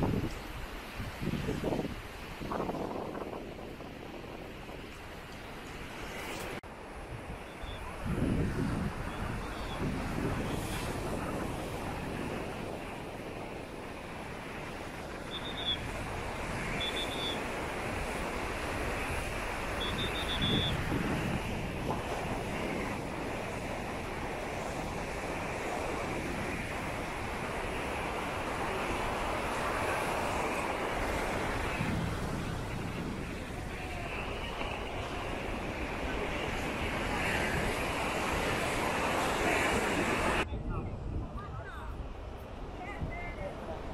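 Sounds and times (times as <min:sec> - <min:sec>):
sea surf on a beach: 0:00.0 - 0:43.9
waves breaking: 0:00.0 - 0:43.9
wind buffeting microphone: 0:00.0 - 0:43.9.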